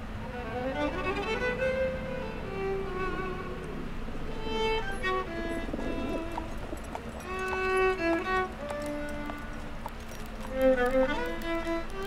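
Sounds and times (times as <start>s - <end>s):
solo violin slow melody: 0.0s - 12.0s.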